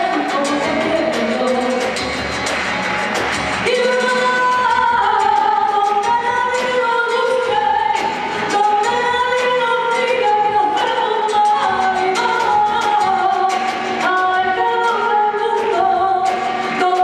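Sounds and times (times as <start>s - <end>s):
woman singing: 0.0s - 2.3s, 3.6s - 17.0s
live band accompaniment: 0.0s - 17.0s.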